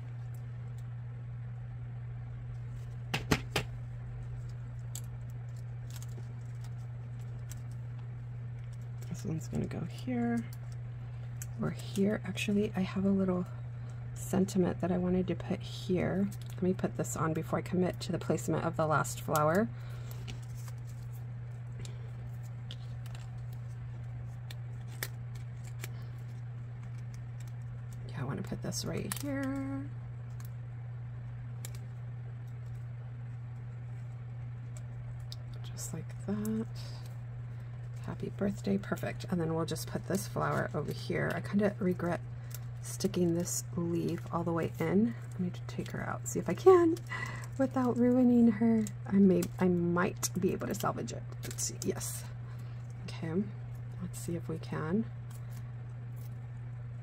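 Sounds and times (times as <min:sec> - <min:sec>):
steady low hum: 0:00.0 - 0:57.0
paper-handling ticks: 0:03.6 - 0:12.7, 0:16.1 - 0:30.6, 0:31.5 - 0:53.9
paper rustling: 0:19.9 - 0:21.2.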